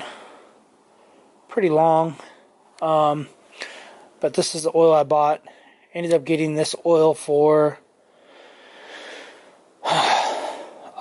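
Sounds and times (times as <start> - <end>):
man breathing in and out: 0.0 - 1.5, 3.4 - 4.2, 5.4 - 5.9, 7.9 - 11.0.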